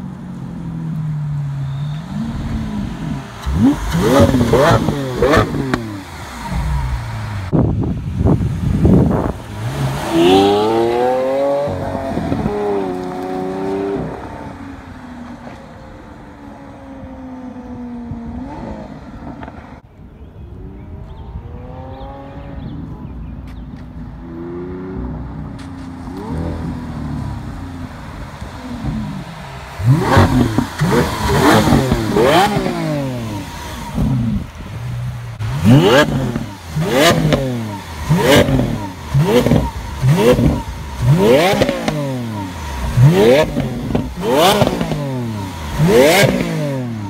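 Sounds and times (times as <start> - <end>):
sports car engine accelerating: 0.0 - 7.7, 8.3 - 19.8, 20.4 - 47.0.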